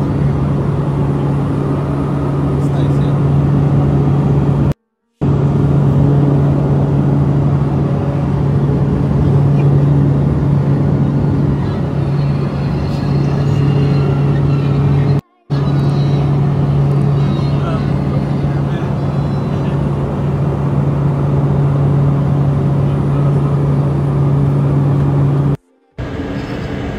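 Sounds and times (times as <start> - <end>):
aircraft engine drone: 0.0 - 26.9
faint voices: 17.0 - 20.1.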